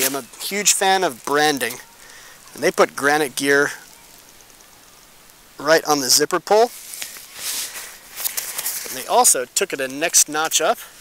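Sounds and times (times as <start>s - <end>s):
backpack nylon fabric rustling: 0.0s - 2.0s, 6.7s - 9.4s.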